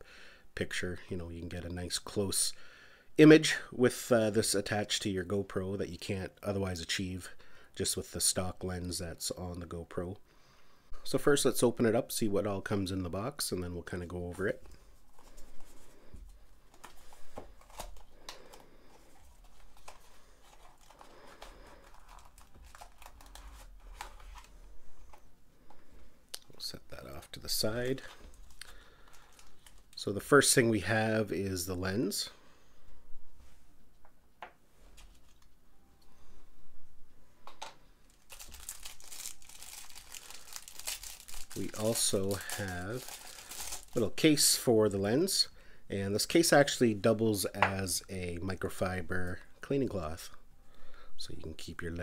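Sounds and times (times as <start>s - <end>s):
packaging rustling and crinkling: 14.6s - 25.3s, 27.5s - 30.0s, 38.0s - 44.4s.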